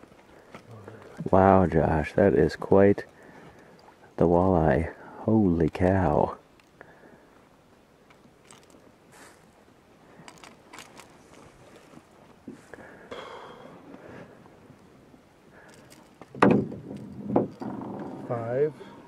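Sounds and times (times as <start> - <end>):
fishing gear clicking and scraping: 0.0 - 4.2, 5.5 - 6.9, 8.0 - 12.8, 13.8 - 18.6.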